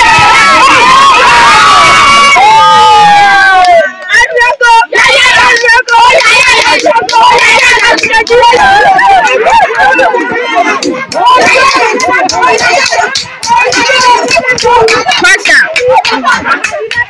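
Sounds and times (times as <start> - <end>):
children cheering and shouting: 0.0 - 17.0.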